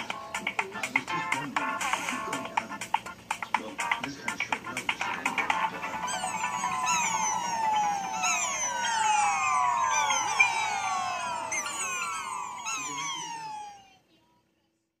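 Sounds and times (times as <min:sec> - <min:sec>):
cartoon falling whistle tones: 0:06.0 - 0:14.0.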